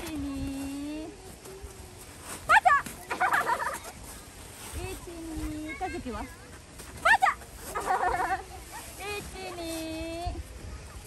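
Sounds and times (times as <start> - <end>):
child giggling: 3.1 - 4.0, 7.8 - 8.9.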